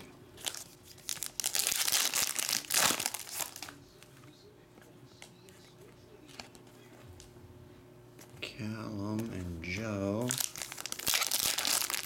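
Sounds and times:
foil wrapper tearing and crinkling: 0:00.4 - 0:03.8, 0:10.2 - 0:12.0.

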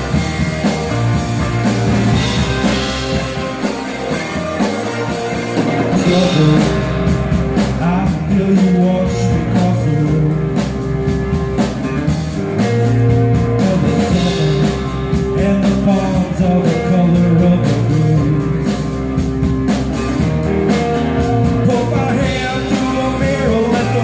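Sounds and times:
drum kit: 0:00.0 - 0:24.0
electric guitars: 0:00.0 - 0:24.0
man singing into microphone: 0:05.9 - 0:07.0, 0:07.8 - 0:10.7, 0:13.6 - 0:19.0, 0:21.6 - 0:24.0.

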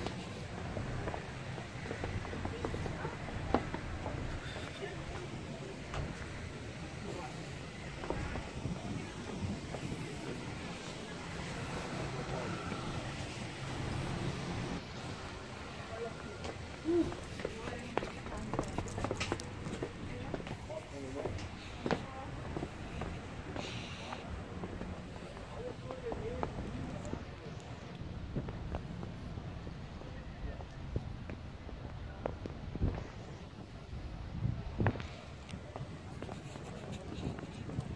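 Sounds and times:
wind rumbling on microphone: 0:00.0 - 0:15.6, 0:26.5 - 0:37.9
indistinct voices: 0:00.0 - 0:28.8.

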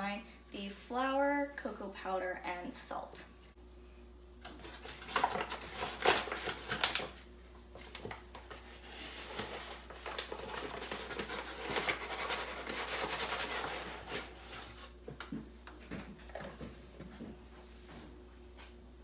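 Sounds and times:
scraping and rustling of flour: 0:08.5 - 0:15.0.

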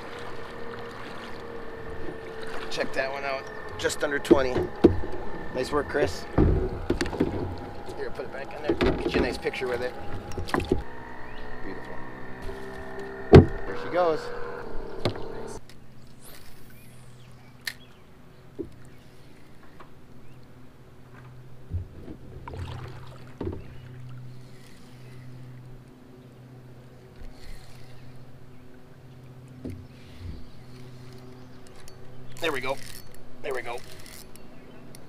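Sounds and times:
steady low hum: 0:00.0 - 0:35.0
gear knocking against kayak hull: 0:03.8 - 0:05.5.

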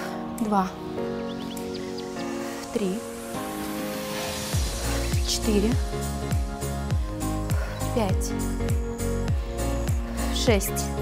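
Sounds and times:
deep bass drum beat: 0:04.6 - 0:10.1.

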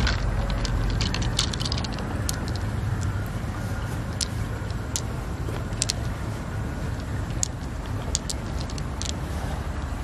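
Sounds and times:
pearls clicking on shell: 0:00.0 - 0:03.3, 0:04.1 - 0:06.2, 0:06.9 - 0:09.2
steady low rumble: 0:00.0 - 0:10.0.

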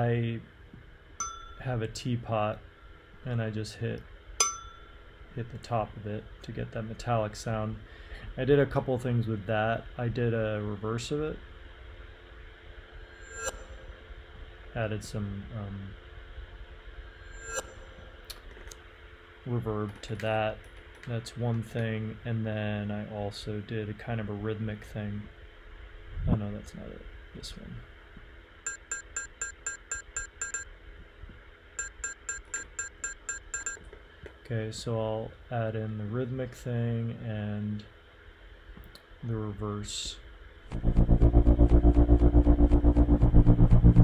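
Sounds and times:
low steady hum: 0:00.0 - 0:44.0
reversed metallic ringing: 0:01.2 - 0:01.6, 0:04.4 - 0:05.0.

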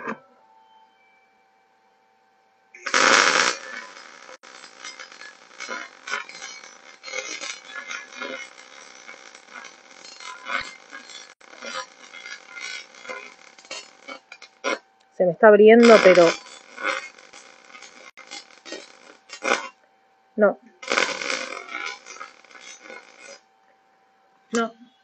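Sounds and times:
welding arc crackling: 0:02.8 - 0:23.6.

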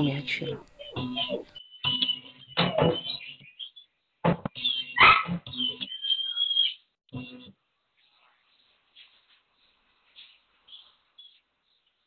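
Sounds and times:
dogs barking: 0:05.0 - 0:05.4.

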